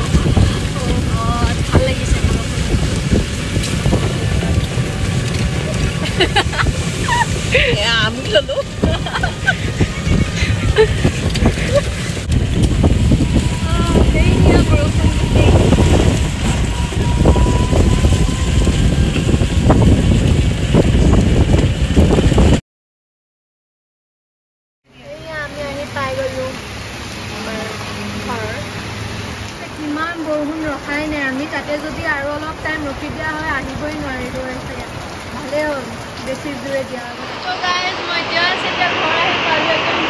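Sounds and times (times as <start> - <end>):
rickshaw rumbling on rough road: 0.0 - 22.6, 24.9 - 40.0
wind buffeting microphone: 0.0 - 22.6.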